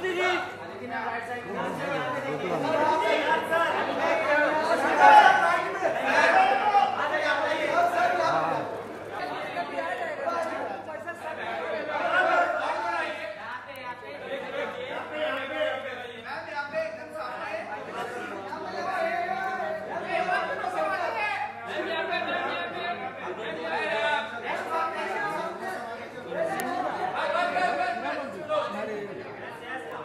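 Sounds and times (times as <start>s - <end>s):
overlapping chatter of voices: 0.0s - 30.0s.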